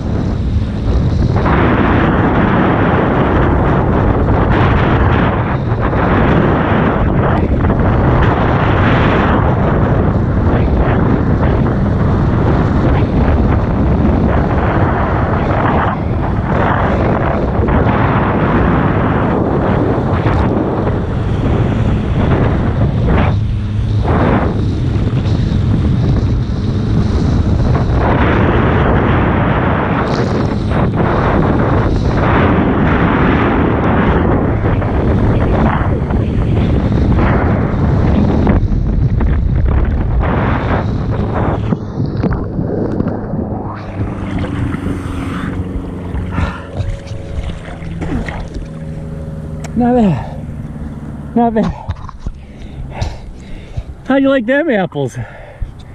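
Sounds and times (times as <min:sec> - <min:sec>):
wind buffeting microphone: 0:00.0 - 0:55.9
water ski rushing hiss: 0:43.9 - 0:51.6.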